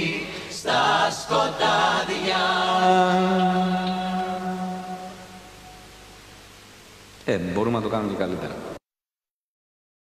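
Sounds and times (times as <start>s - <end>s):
faint hiss: 0.0s - 8.8s
man singing a long note: 2.7s - 6.0s.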